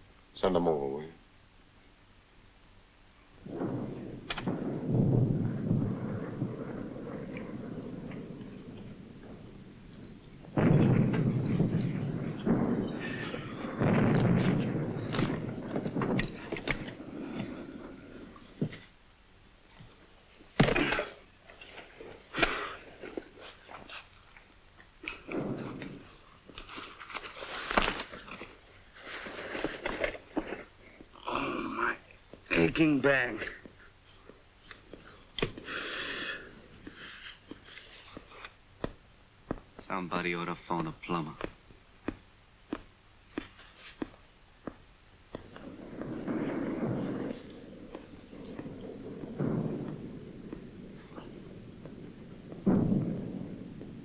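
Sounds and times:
artillery explosions: 3.4s - 19.0s, 19.8s - 34.3s, 45.3s - 54.0s.

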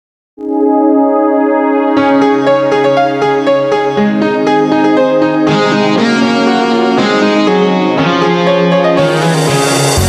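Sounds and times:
instrumental pop backing track: 0.4s - 10.0s.

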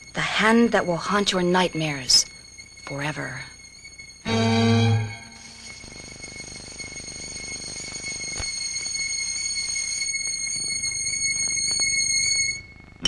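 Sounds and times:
low rumbling drone: 0.0s - 6.8s
high steady whistle-like tone: 0.0s - 13.0s.

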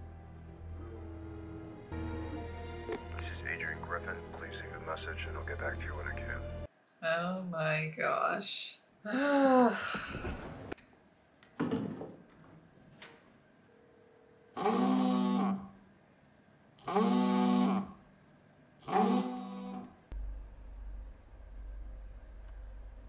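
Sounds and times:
person sighing: 9.1s - 10.4s.

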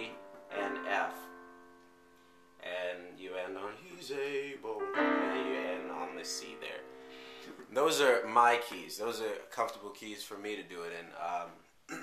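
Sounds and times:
person speaking: 0.0s - 1.4s, 2.6s - 11.6s
digital piano chord ringing: 0.0s - 2.7s, 4.1s - 8.3s.

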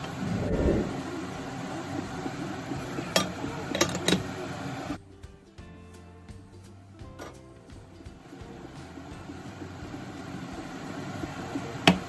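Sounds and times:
pan simmering and bubbling: 0.0s - 5.2s, 6.0s - 12.0s.

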